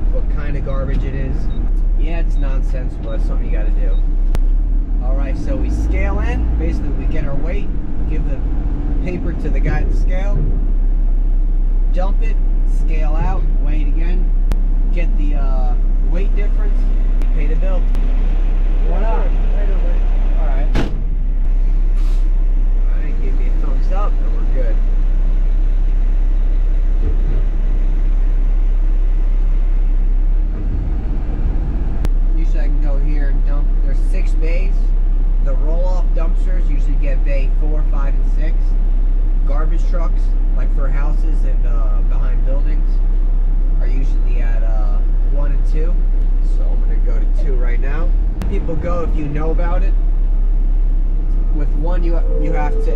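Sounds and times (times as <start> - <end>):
man talking: 0.0 - 4.1, 5.0 - 10.5, 11.9 - 14.3, 14.9 - 18.0, 18.8 - 20.8, 22.8 - 24.8, 32.4 - 38.8, 39.5 - 43.0, 43.8 - 50.0, 51.3 - 52.9
truck engine rumble: 0.0 - 52.9.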